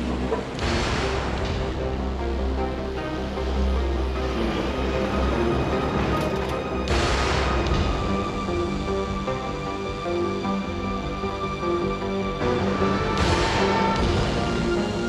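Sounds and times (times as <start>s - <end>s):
steady low bass: 0.0s - 15.0s
tense film score music: 0.0s - 15.0s.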